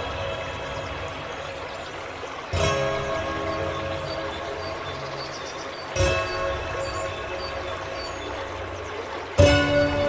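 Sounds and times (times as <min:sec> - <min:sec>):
water trickling from a fountain: 0:00.0 - 0:10.0
slow piano chords: 0:09.2 - 0:10.0.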